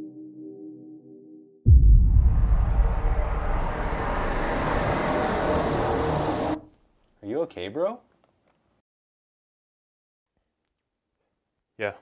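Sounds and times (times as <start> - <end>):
deep rumble: 1.7 - 6.6
noisy hissing rush: 2.6 - 6.6.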